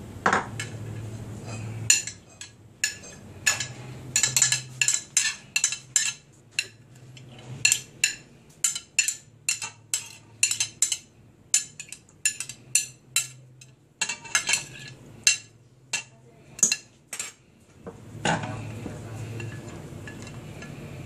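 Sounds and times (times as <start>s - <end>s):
utensil clinking on glass dish: 1.9s - 6.8s, 7.6s - 17.4s.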